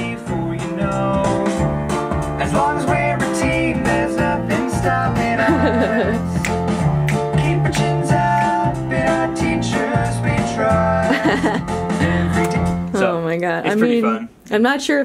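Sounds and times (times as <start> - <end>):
guitar-led song with beat: 0.0 - 13.0.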